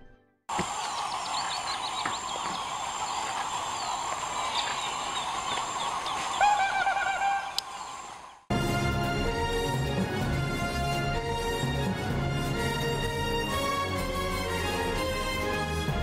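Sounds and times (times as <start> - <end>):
chorus of birds and animals: 0.5 - 8.5
drawn-out pitched animal call: 0.6 - 7.7.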